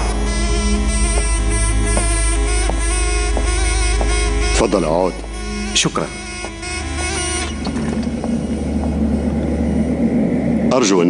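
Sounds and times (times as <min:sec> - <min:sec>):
background music: 0:00.0 - 0:11.0
low rumbling drone: 0:00.0 - 0:11.0.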